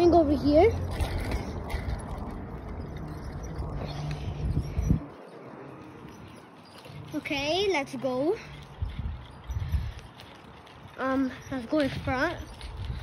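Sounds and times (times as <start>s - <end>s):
bicycle rolling over pavement: 0.0s - 13.0s.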